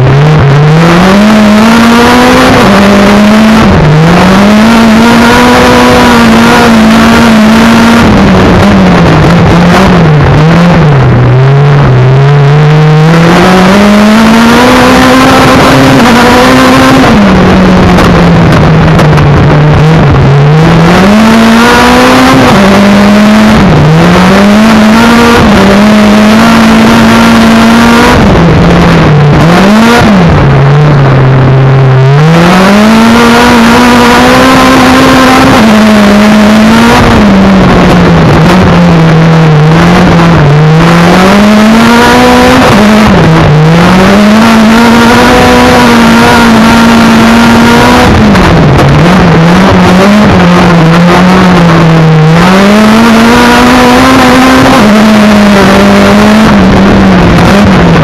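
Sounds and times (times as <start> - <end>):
race car engine revving: 0.0 - 58.0.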